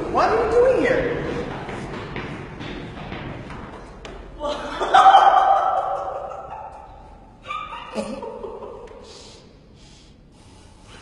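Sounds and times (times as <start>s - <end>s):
person breathing: 9.0s - 11.0s.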